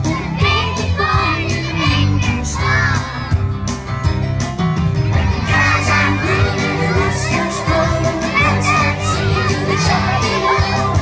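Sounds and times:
children singing and shouting: 0.0 - 3.8, 5.0 - 11.0
upbeat music with bass line: 0.0 - 11.0.

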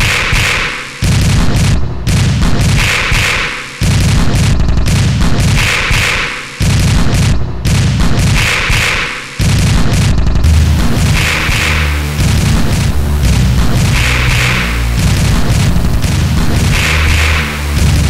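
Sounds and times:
bass-heavy electronic music: 9.5 - 18.0.

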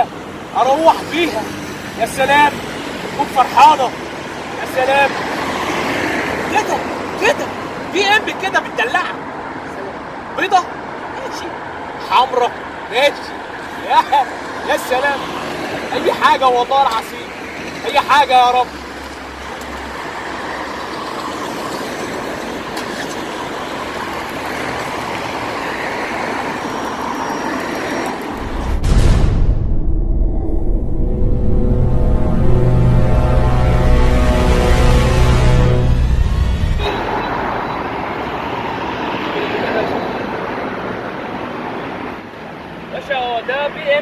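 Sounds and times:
passing traffic: 0.0 - 29.2, 30.3 - 44.0
steady rushing noise: 25.8 - 39.3.

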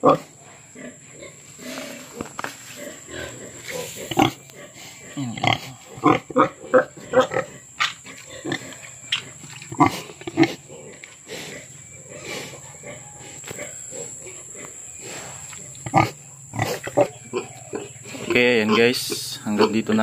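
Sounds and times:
pig grunting: 0.0 - 20.0.

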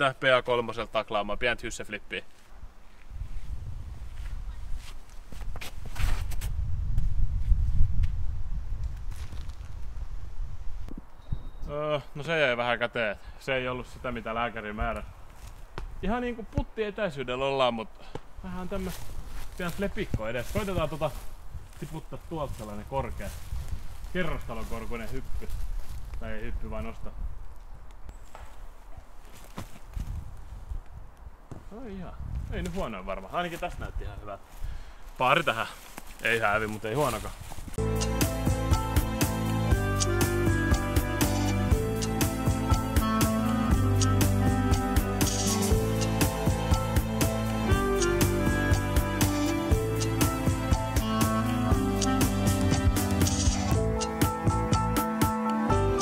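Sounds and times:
light steps on forest floor: 2.1 - 8.2, 8.8 - 10.0, 13.8 - 16.7, 18.0 - 26.4, 27.4 - 37.9
quick scuffs: 4.1 - 8.2
footsteps on turf: 18.7 - 26.2, 35.2 - 55.0.

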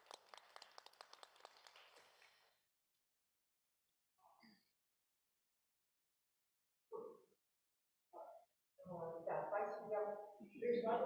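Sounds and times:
faint scattered applause: 0.0 - 2.5.

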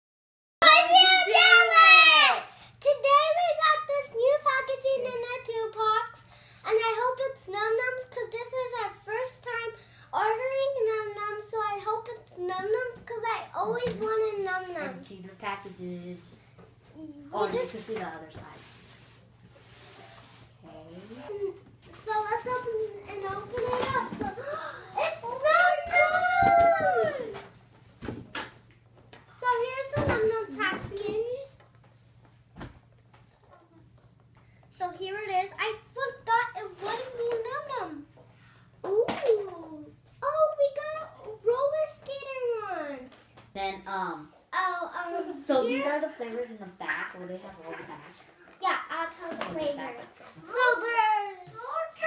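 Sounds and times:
child exclaiming: 0.6 - 4.6, 22.0 - 27.4, 50.4 - 52.0
child's voice: 0.6 - 15.1, 21.0 - 27.4, 29.4 - 31.6, 34.8 - 38.2, 38.8 - 46.2, 48.0 - 52.0.

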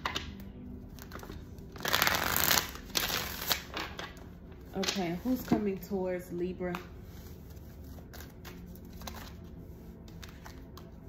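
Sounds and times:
cards being shuffled: 0.0 - 5.6, 6.7 - 11.0.

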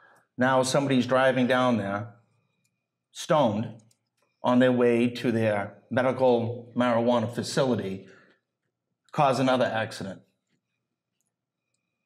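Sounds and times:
man speaking: 0.4 - 2.2, 3.1 - 8.1, 9.2 - 10.2.

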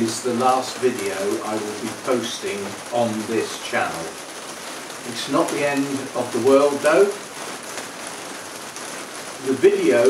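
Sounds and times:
rain on a glass roof: 0.0 - 10.0.

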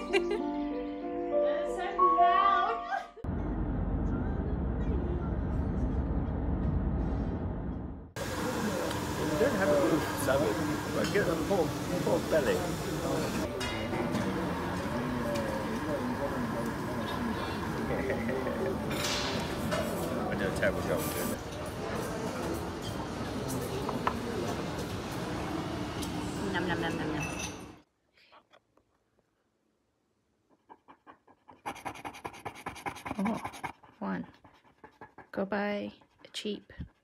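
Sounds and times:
murmur of voices: 8.2 - 27.2.

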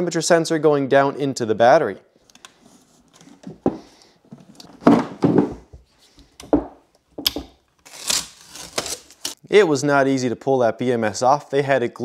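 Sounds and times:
handling noise: 3.0 - 7.6
adhesive foam tearing: 7.8 - 9.4.

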